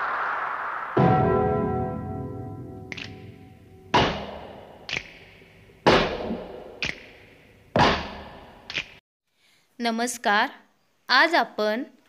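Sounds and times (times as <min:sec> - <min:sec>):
short sharp hit: 0:01.0 - 0:05.0.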